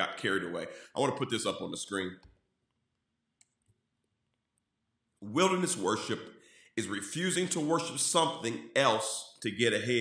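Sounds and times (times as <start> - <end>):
man speaking: 0.0 - 2.3, 5.2 - 10.0
computer mouse clicks: 3.4 - 4.4.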